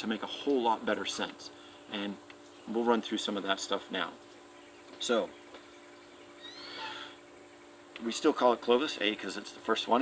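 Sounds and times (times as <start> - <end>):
steady low hum: 0.0 - 10.0
faint animal call: 6.3 - 7.2.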